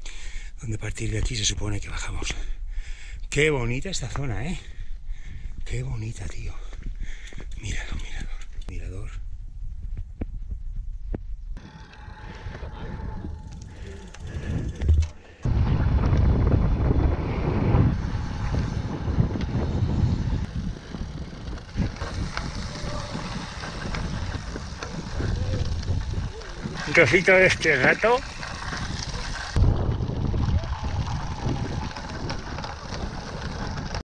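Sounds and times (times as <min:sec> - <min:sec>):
wind noise on microphone: 0:04.4 - 0:34.0
bicycle tyre noise on road: 0:11.0 - 0:34.0.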